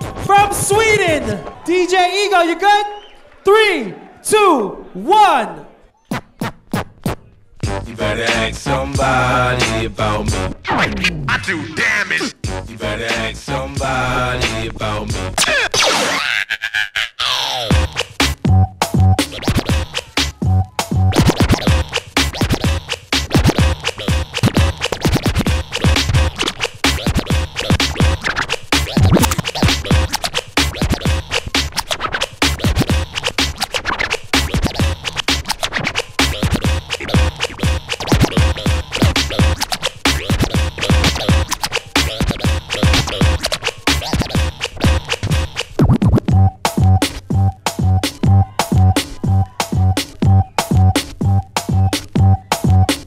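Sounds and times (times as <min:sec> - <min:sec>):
record scratching: 0:00.0 - 0:01.3, 0:10.5 - 0:12.4, 0:13.1 - 0:18.2, 0:18.9 - 0:53.0
hip-hop beat: 0:06.1 - 0:16.1, 0:17.2 - 0:53.0.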